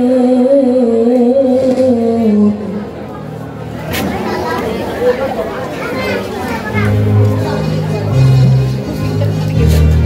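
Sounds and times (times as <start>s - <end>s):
low accompaniment notes: 6.6s - 10.0s.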